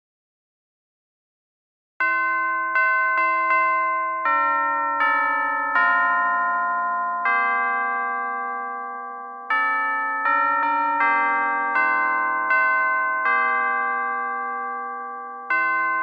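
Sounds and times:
slow melody on chimes: 2.0s - 16.0s.

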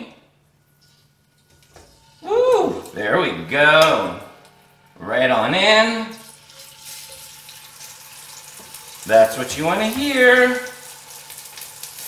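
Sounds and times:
faint steady hum: 0.0s - 12.0s
man speaking: 2.3s - 4.3s, 5.0s - 6.2s, 9.1s - 10.8s.

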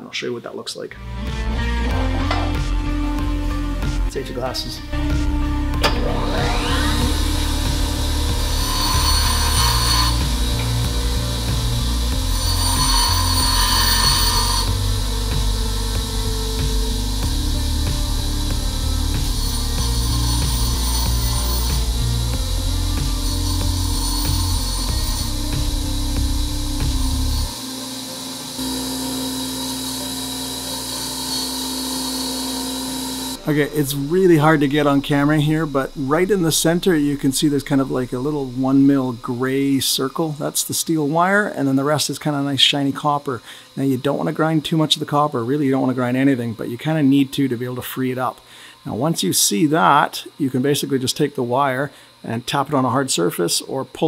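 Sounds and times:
bench grinder grinding metal: 1.8s - 43.2s.

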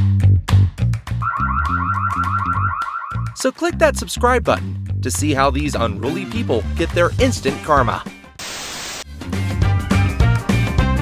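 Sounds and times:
car alarm warbling: 1.2s - 3.4s
background music with steady beat: 9.1s - 11.0s.

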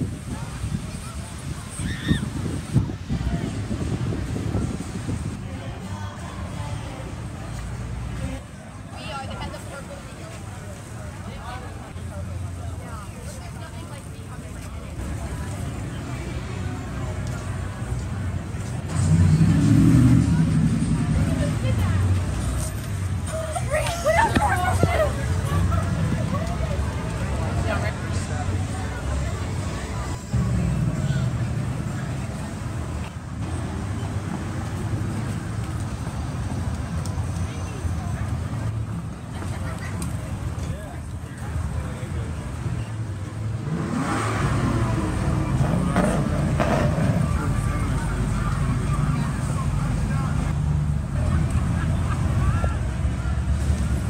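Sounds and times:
cars passing: 0.0s - 54.0s
people's voices: 0.0s - 54.0s
vehicle passing by: 15.1s - 23.1s, 42.6s - 54.0s
engine accelerating: 18.9s - 22.2s, 43.5s - 52.4s.

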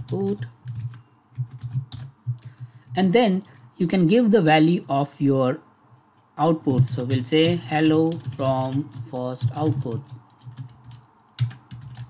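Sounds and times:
computer keyboard typing: 0.0s - 3.7s, 6.6s - 12.0s.

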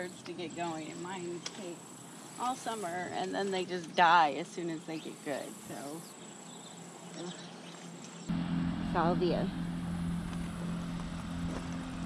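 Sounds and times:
insect high-pitched trill: 0.0s - 4.0s.

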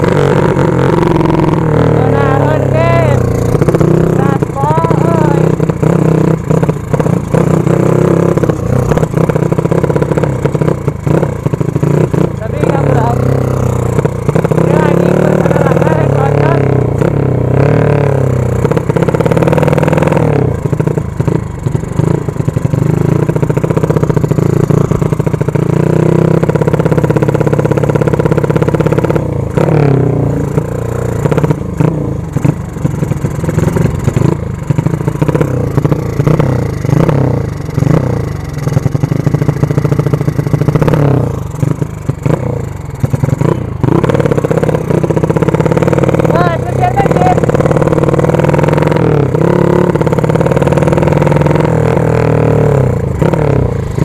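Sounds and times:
minibike engine revving: 0.0s - 54.0s.

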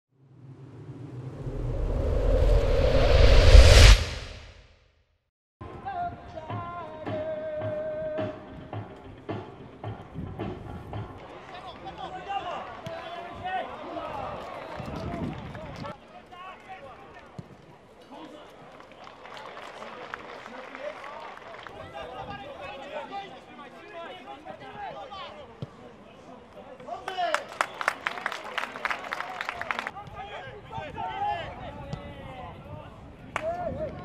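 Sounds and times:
low rumbling building to whoosh: 0.2s - 4.6s.

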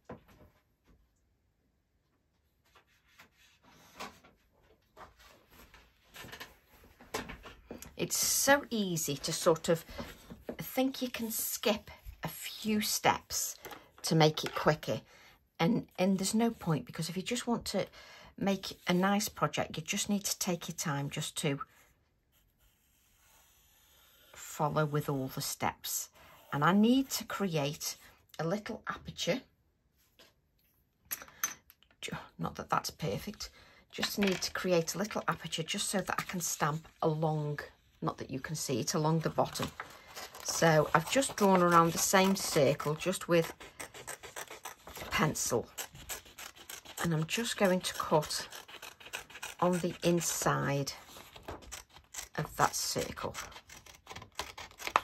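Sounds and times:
paper rustling: 39.2s - 50.3s.

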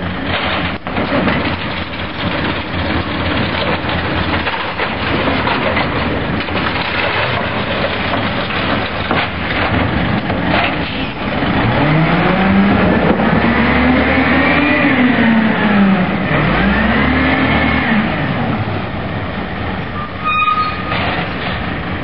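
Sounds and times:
garbage truck diesel engine accelerating: 0.0s - 22.0s.

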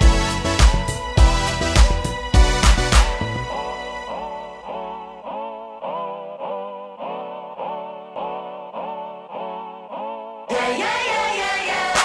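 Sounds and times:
synthesizer repeating note pattern: 0.0s - 4.2s.

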